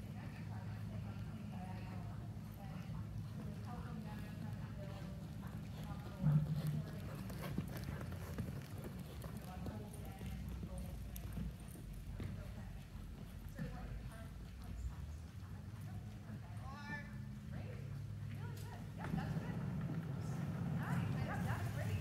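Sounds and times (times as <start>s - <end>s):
horse hoofbeats: 2.9s - 16.6s.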